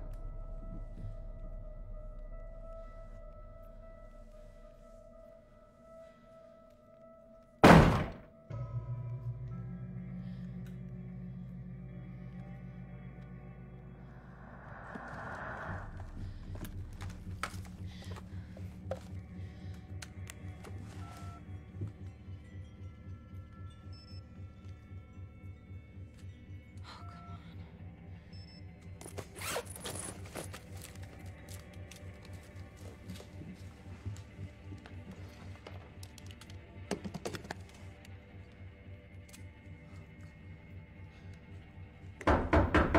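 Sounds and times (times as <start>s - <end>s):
low film score drone: 0.0s - 42.9s
bang on wooden door: 7.6s - 8.2s, 42.3s - 42.9s.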